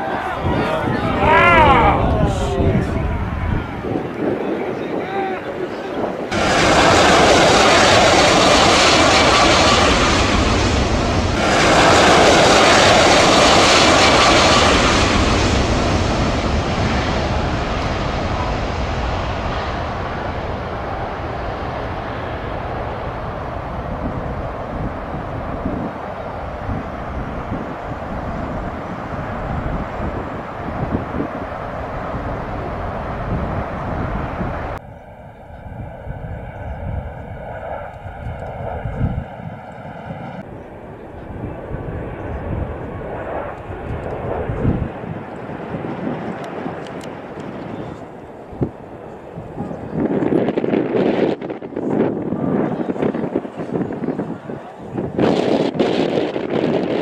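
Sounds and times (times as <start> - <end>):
distant jet engine whine: 0.0 - 57.0
jet airliner engines passing: 0.0 - 57.0.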